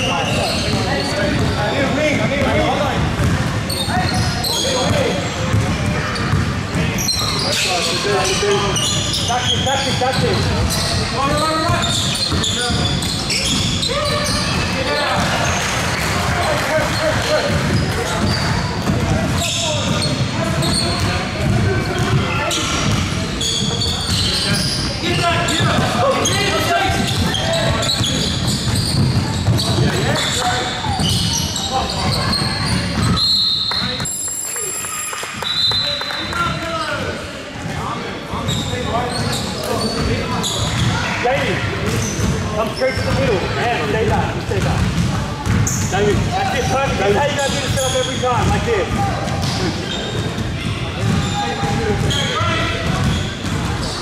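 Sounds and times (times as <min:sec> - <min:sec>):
basketball bouncing on hardwood: 0:04.9 - 0:06.8, 0:28.0 - 0:30.0, 0:44.6 - 0:46.3.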